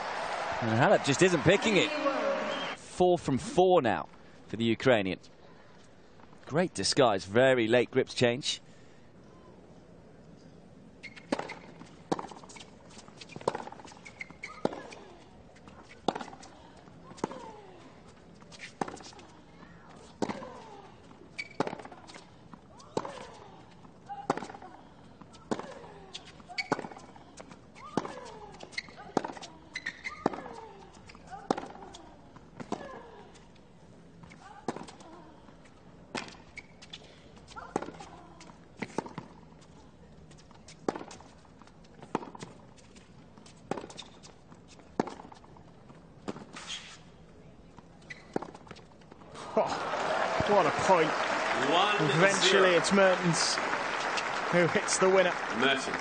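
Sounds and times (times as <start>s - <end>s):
tennis ball bouncing: 15.8s - 16.5s, 21.4s - 22.3s, 22.9s - 33.0s, 34.3s - 35.0s, 37.6s - 39.5s, 40.3s - 41.3s, 41.9s - 42.6s, 43.4s - 46.6s, 48.3s - 49.2s.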